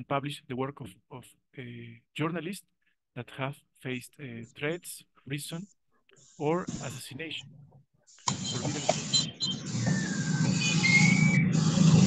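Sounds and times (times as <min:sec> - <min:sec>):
people talking: 0:00.0 - 0:02.6, 0:03.2 - 0:05.7, 0:06.4 - 0:07.5, 0:08.3 - 0:09.1
faint high whistling tones: 0:08.3 - 0:12.0.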